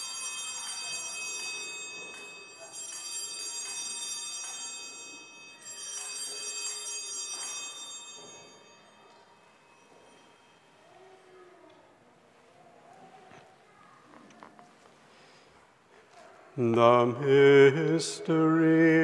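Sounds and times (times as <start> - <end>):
altar bells ringing: 0.0 - 11.6.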